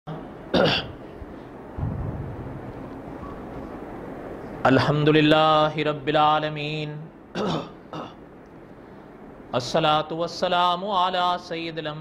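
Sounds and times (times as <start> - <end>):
low background rumble: 0.1 - 12.0.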